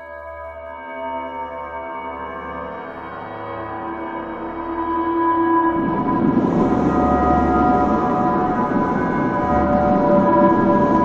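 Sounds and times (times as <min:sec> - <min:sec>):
sustained drone tones: 0:02.7 - 0:11.0
loud rumble: 0:05.7 - 0:11.0.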